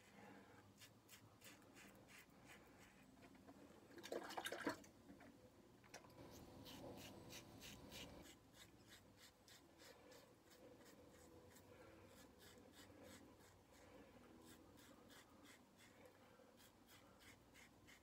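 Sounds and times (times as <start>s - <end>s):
razor scraping stubble: 6.2s - 13.6s.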